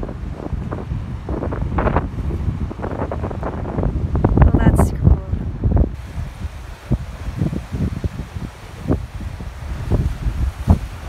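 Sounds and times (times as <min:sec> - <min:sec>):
ocean surf on rocky shore: 0:00.0 - 0:11.0
wind buffeting microphone: 0:00.0 - 0:11.0.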